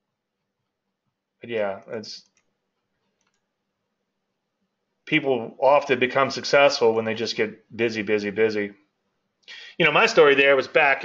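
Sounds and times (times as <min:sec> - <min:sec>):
very faint clicks: 0:02.2 - 0:03.5.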